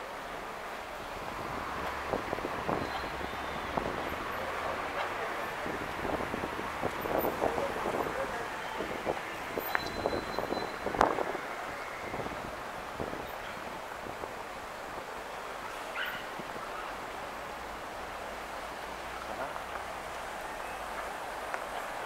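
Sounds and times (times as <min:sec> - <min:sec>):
distant traffic: 0:00.0 - 0:22.0
voices of passers-by: 0:00.0 - 0:22.0.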